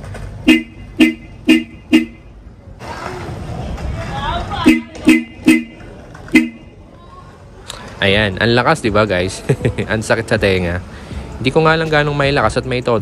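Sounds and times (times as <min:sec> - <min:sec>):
scooter horn beeps: 0:00.4 - 0:02.3, 0:04.6 - 0:06.8.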